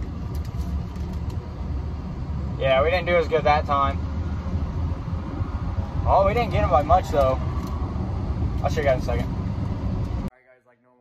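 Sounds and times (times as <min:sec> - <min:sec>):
diesel truck engine rumbling: 0:00.0 - 0:10.3.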